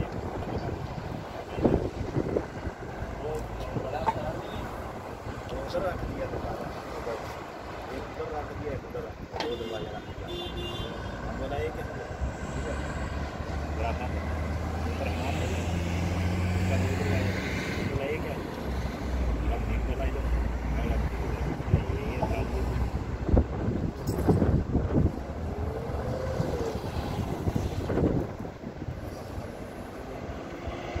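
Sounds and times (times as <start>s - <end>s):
wind on microphone: 0.0s - 10.2s, 20.3s - 31.0s
vehicles driving past: 0.0s - 31.0s.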